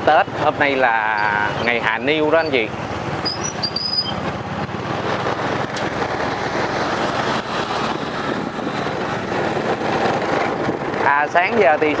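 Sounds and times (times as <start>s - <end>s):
tyres rumbling over bridge deck: 0.0s - 12.0s
low motorbike engine hum: 0.3s - 11.1s.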